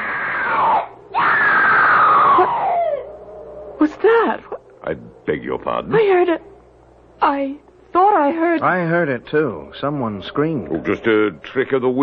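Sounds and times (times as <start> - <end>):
long loud screams: 0.0 - 3.3.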